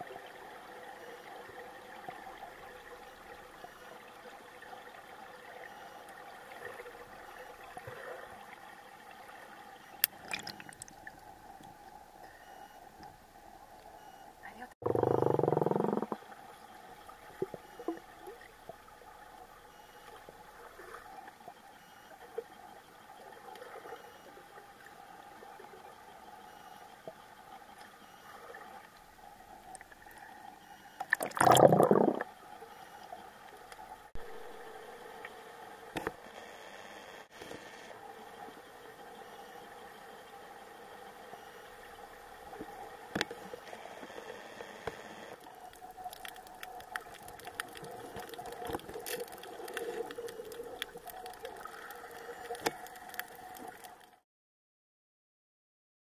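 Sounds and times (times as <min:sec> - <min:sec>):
faint underwater hum: 0:00.0 - 0:54.2.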